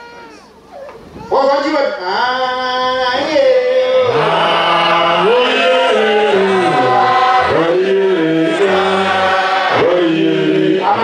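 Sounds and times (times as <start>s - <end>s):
congregation singing in harmony: 2.6s - 11.0s.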